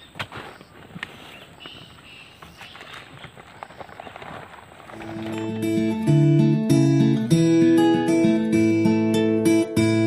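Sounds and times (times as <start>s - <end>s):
plastic sack rustling: 0.0s - 6.0s.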